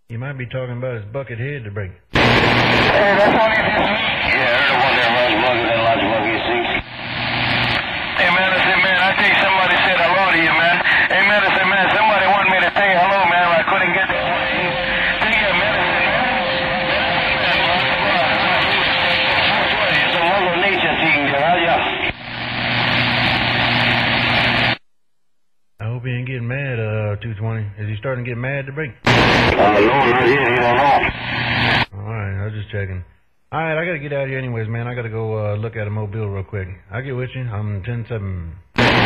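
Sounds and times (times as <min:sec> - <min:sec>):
garbled radio voices: 0:02.2 - 0:24.8, 0:29.1 - 0:31.9, 0:38.8 - 0:39.0
radio static and hiss: 0:02.2 - 0:24.8, 0:29.1 - 0:31.9, 0:38.8 - 0:39.0.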